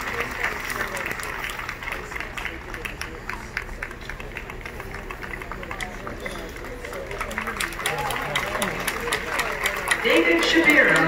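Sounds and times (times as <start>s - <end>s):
audience clapping: 0.0s - 11.0s
people talking: 0.0s - 11.0s.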